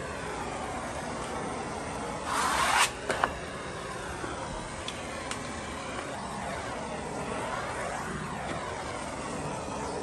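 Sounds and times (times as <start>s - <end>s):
steady background hiss: 0.0s - 10.0s
wallpaper rasping under a tool: 2.3s - 3.0s.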